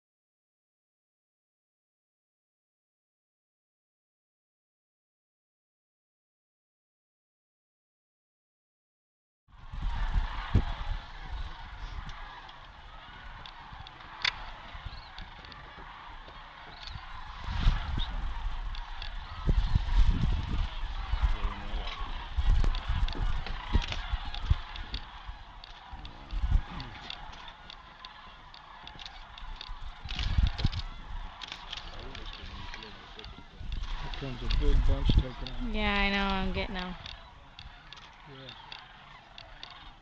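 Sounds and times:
cranes calling in chorus: 0:09.6 - 0:40.0.

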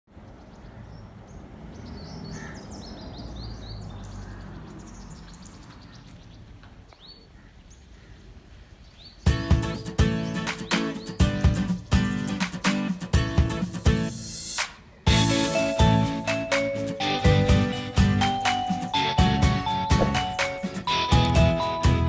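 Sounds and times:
small birds chirping: 0:00.2 - 0:14.2, 0:14.8 - 0:21.7
loud music: 0:09.3 - 0:22.0.

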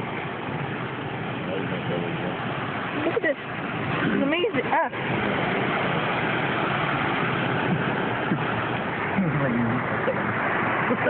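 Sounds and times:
cars driving through floodwater: 0:00.0 - 0:11.0.

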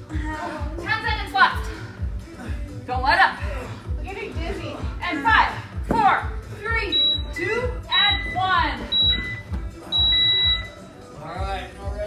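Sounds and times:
interval timer beeping: 0:06.8 - 0:10.8.

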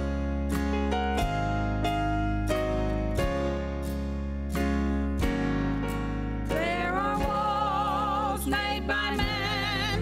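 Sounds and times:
acoustic guitar chords: 0:00.0 - 0:10.0
guitar melody with vibrato: 0:00.0 - 0:10.0.

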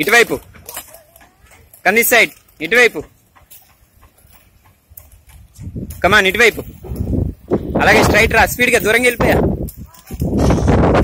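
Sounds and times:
roller-skate wheels on concrete: 0:00.0 - 0:11.0.

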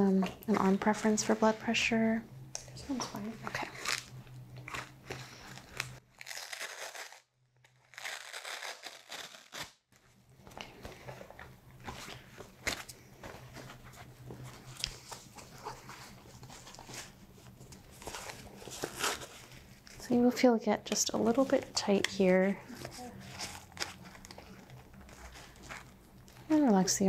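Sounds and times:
fabric cuff rustling and crinkling: 0:21.0 - 0:26.7.

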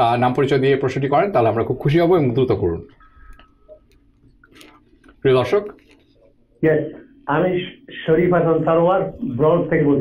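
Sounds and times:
faint clicks and ticks: 0:02.8 - 0:06.5.

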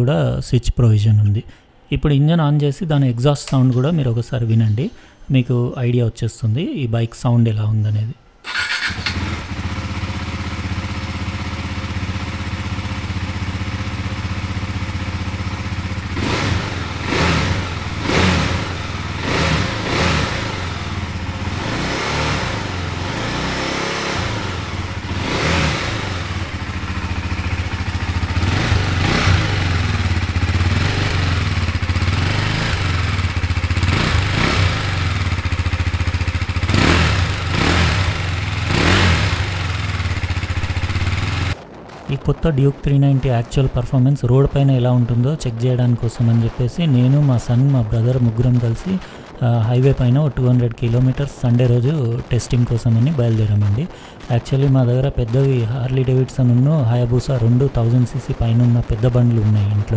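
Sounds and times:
motorcycle engine idling and revving: 0:08.5 - 0:41.6, 0:45.1 - 0:59.9.

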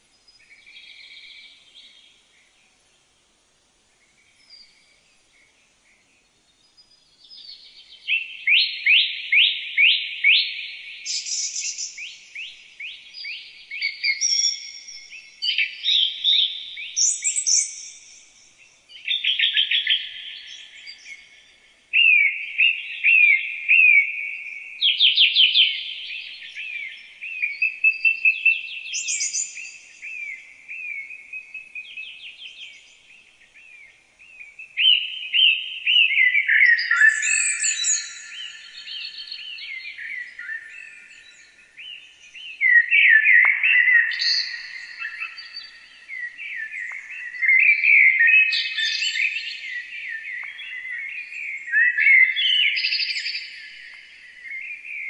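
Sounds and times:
songbirds singing: 0:00.0 - 0:55.0.

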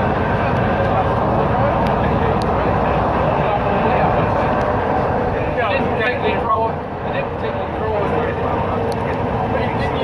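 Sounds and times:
bus diesel engine running: 0:00.0 - 0:10.0.

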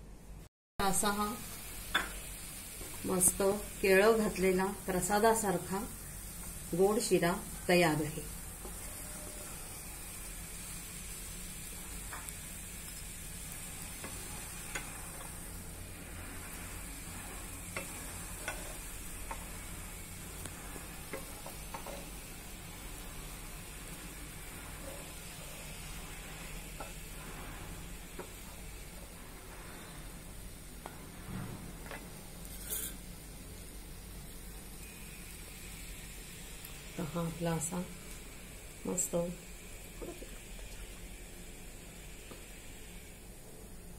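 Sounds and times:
faint sizzle: 0:00.8 - 0:43.9
wooden spatula scraping a pan: 0:08.6 - 0:09.8, 0:14.0 - 0:22.2, 0:24.6 - 0:30.2.

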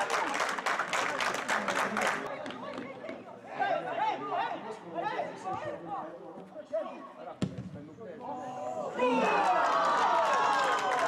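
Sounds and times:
people clapping: 0:00.0 - 0:02.9, 0:09.2 - 0:11.0.

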